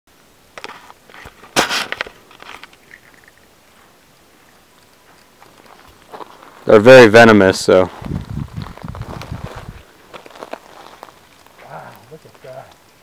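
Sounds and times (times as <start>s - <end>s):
footsteps crunching on gravel: 5.0s - 12.7s.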